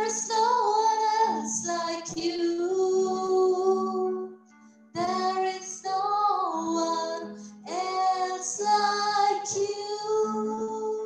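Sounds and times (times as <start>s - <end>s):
woman singing into microphone: 0.0s - 4.3s, 5.0s - 11.0s
soft sustained instrumental backing: 0.0s - 11.0s.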